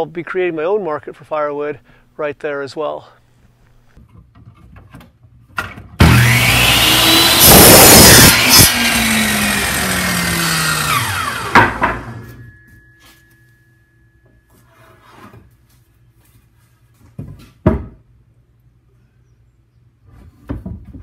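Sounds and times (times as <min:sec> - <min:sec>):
miter saw cutting wood: 0:06.0 - 0:12.2
saw motor winding down: 0:06.0 - 0:12.2.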